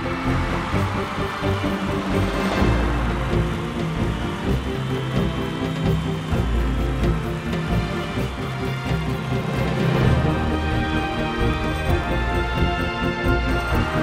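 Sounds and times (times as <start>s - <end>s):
music with steady beat and bass: 0.0s - 14.0s.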